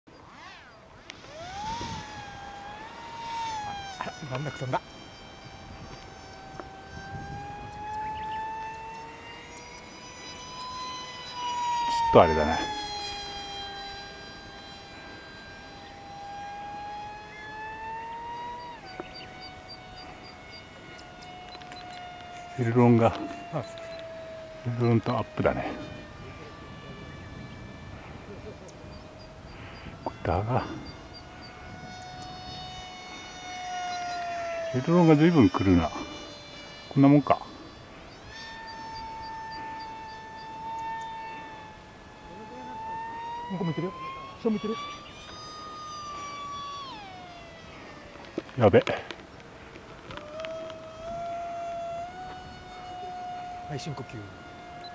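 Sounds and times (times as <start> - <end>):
rc plane motor whining: 0.1 - 54.9.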